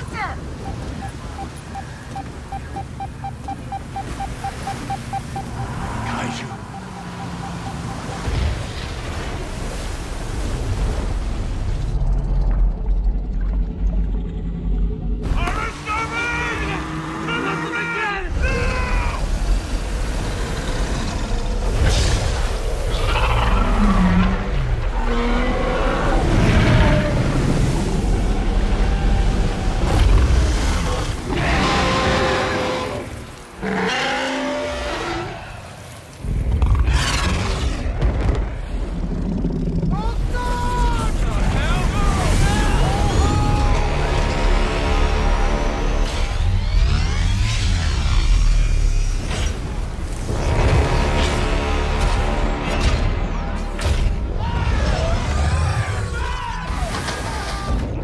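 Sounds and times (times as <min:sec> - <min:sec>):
heavy surf: 0:00.0 - 0:12.1, 0:15.2 - 0:58.0
sea monster roars: 0:13.8 - 0:48.8
storm: 0:36.2 - 0:44.7.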